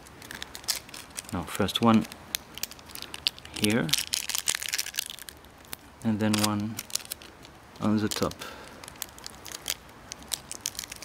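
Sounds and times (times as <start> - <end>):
adhesive tape crinkling: 0.0 - 11.0.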